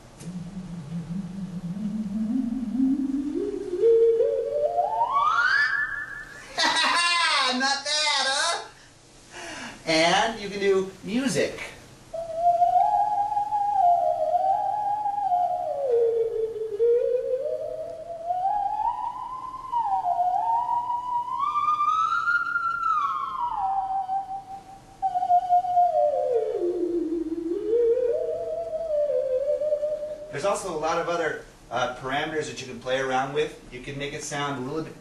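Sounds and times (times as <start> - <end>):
theremin-like sliding tune: 0.0 - 7.0, 12.2 - 31.1.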